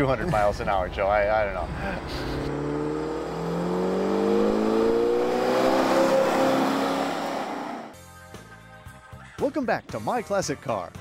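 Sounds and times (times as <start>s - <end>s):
car engine accelerating: 1.3s - 8.0s.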